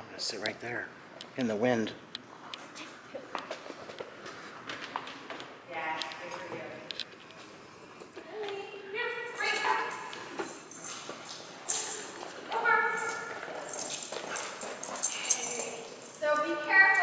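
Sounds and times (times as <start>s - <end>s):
woman's voice: 5.7s - 6.9s, 8.2s - 10.1s, 12.5s - 13.3s, 15.2s - 17.0s.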